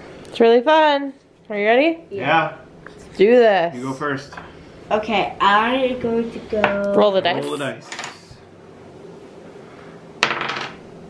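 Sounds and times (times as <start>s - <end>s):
die clacking on table: 10.2s - 10.8s.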